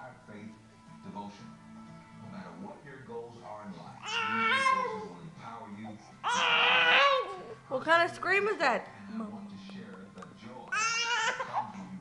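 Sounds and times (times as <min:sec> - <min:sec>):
television talking: 0:00.0 - 0:12.0
baby screaming: 0:04.0 - 0:05.1, 0:06.2 - 0:07.6, 0:10.7 - 0:11.6.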